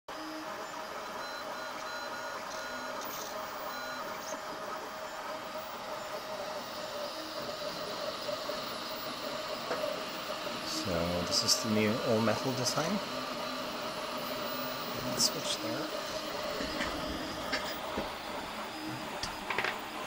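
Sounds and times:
steady printer hum: 0:00.1 - 0:20.0
stepper motors whining: 0:00.2 - 0:20.0.

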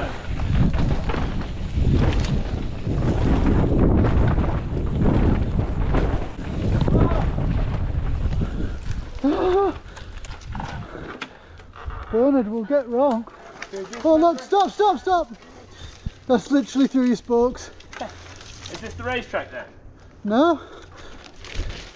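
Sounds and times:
wind rushing over microphone: 0:00.0 - 0:11.1
tyres rolling over dirt: 0:00.0 - 0:12.6
bike rattling and knocking: 0:00.0 - 0:18.9.

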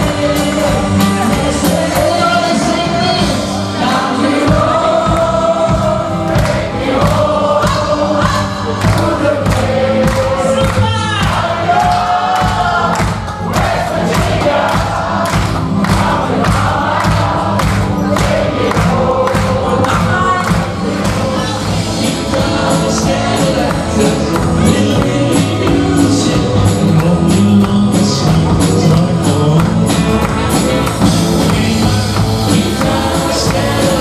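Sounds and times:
country band playing: 0:00.0 - 0:34.0
steady drum beat: 0:00.0 - 0:34.0
voices singing: 0:00.0 - 0:34.0.

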